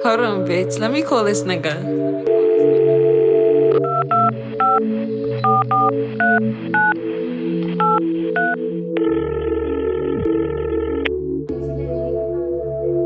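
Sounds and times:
background music chords: 0:00.0 - 0:13.0
phone keypad touch-tones: 0:03.7 - 0:04.8, 0:05.4 - 0:07.0, 0:07.8 - 0:08.6.

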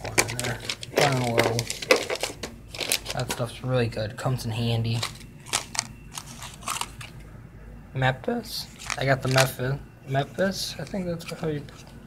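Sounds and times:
plastic packaging crinkling: 0:00.0 - 0:03.6, 0:04.8 - 0:07.3, 0:08.6 - 0:09.6.

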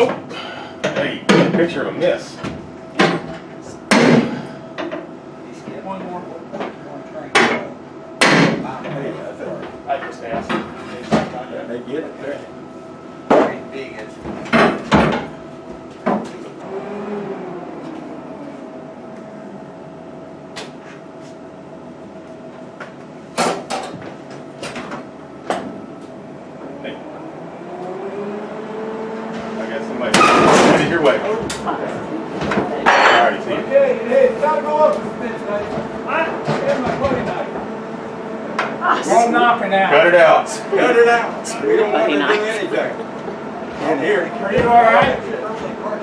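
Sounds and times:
machine whine: 0:00.0 - 0:46.0.

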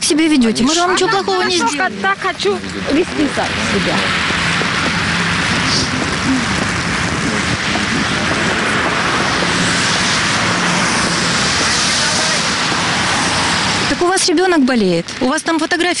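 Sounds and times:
faint engine hum: 0:00.0 - 0:13.9
falling rain: 0:01.1 - 0:16.0
car tyres on wet asphalt: 0:01.6 - 0:16.0.

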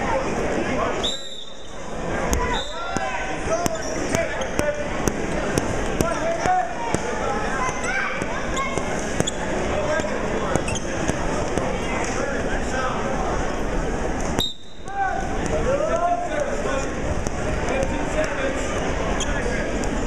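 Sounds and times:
referee whistle: 0:01.0 - 0:01.8, 0:02.5 - 0:02.9, 0:14.4 - 0:14.9.

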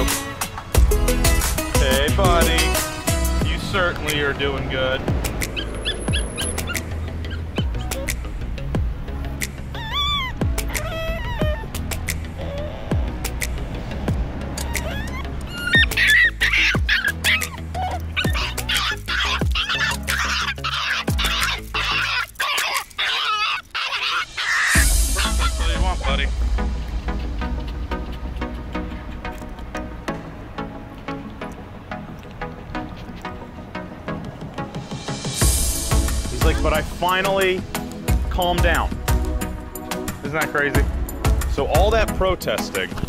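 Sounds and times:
background music with bass: 0:00.0 - 0:23.0, 0:23.9 - 0:43.0
dog whining and crying: 0:05.4 - 0:08.7, 0:09.6 - 0:13.6, 0:14.4 - 0:26.2.

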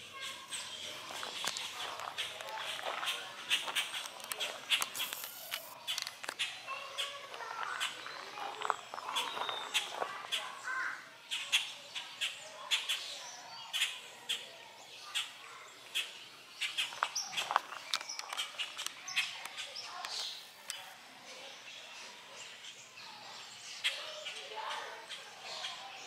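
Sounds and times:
birds chirping: 0:00.0 - 0:26.0
sharp clicks and crunches: 0:01.1 - 0:06.5, 0:16.8 - 0:20.8.

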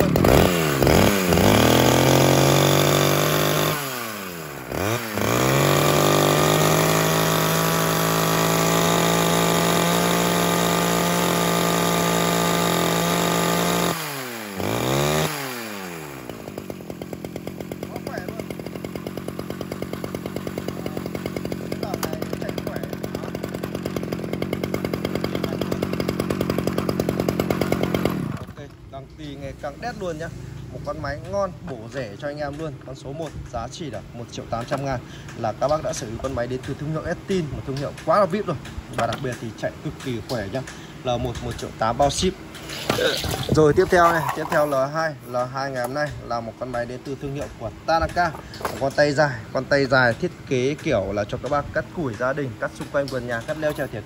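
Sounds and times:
chainsaw revving and idling: 0:00.0 - 0:54.0.

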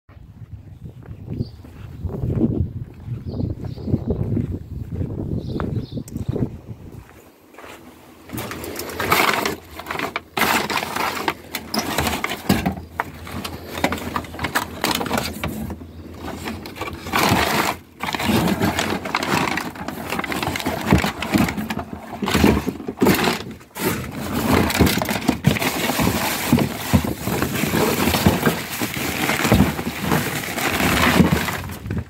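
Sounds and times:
plastic bags and paper rustling: 0:08.2 - 0:32.0
hard plastic knocks and scrapes: 0:08.3 - 0:32.0.

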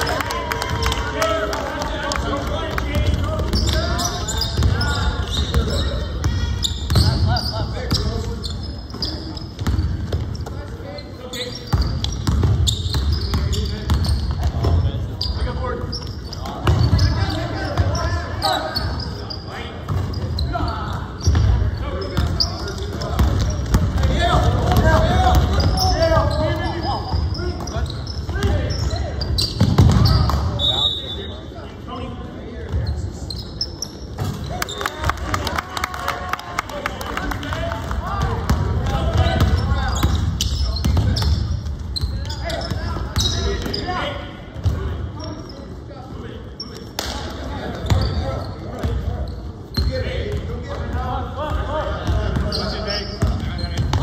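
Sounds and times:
basketball bouncing on wooden floor: 0:11.7 - 0:14.8.

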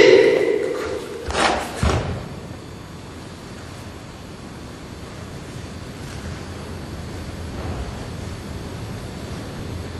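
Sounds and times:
steady rushing noise: 0:00.0 - 0:01.7.

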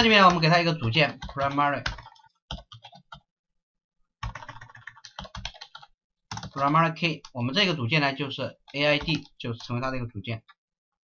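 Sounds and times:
computer keyboard typing: 0:00.0 - 0:03.3, 0:04.2 - 0:07.6, 0:08.4 - 0:10.6.

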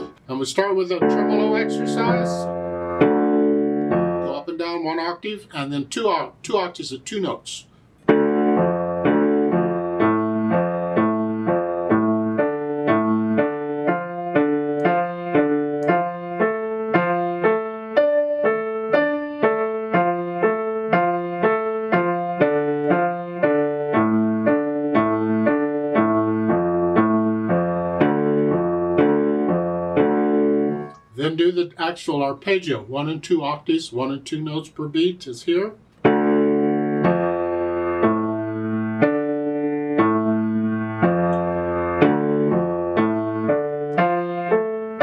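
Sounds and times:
piano arpeggio: 0:00.8 - 0:04.8, 0:08.0 - 0:31.1, 0:36.0 - 0:45.0.

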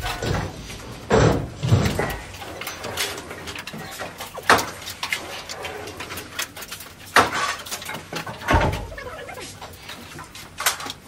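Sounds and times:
wooden boards knocking and clattering: 0:00.0 - 0:04.8, 0:07.0 - 0:08.9.

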